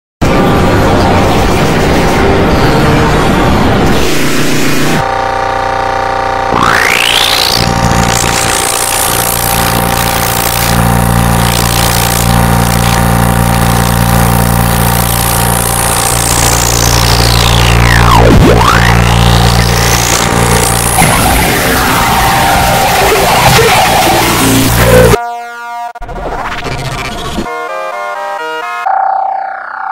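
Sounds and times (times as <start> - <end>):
distorted droning electronic mix: 0.2 - 29.9.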